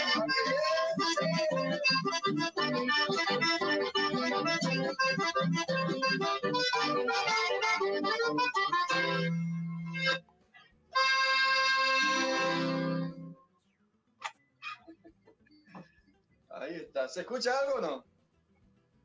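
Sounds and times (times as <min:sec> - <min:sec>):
accordion: 0:00.0 - 0:13.5
acoustic guitar: 0:00.0 - 0:16.7, 0:17.8 - 0:19.0.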